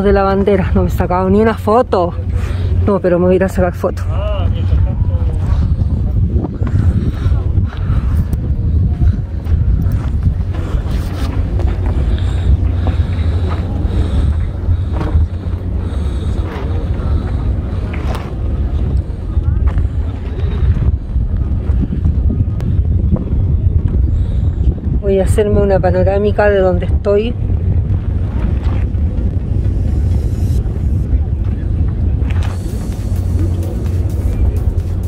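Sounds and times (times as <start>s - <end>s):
faint voices: 0.0s - 35.0s
wind buffeting microphone: 0.0s - 35.0s.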